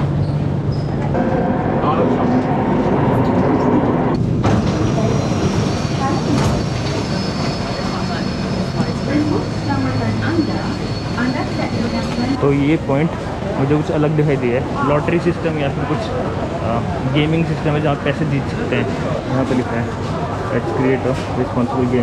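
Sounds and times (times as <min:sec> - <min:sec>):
metro train rumbling: 0:00.0 - 0:18.0
station background voices: 0:00.9 - 0:22.0.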